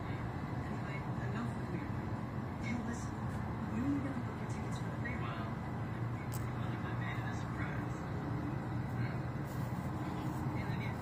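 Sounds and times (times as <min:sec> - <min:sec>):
low rumble of city ambience: 0:00.0 - 0:11.0
faint voices: 0:02.6 - 0:11.0.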